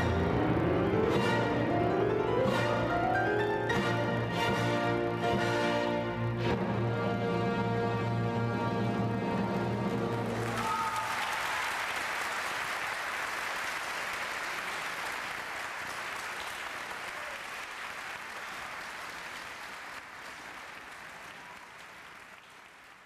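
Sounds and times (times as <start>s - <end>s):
audience applauding: 9.6s - 23.0s.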